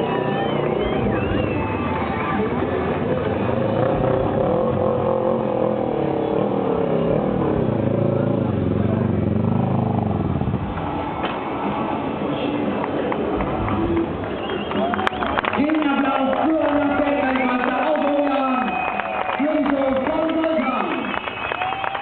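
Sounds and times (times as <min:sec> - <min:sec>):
motorcycle engine revving: 0:00.0 - 0:14.6.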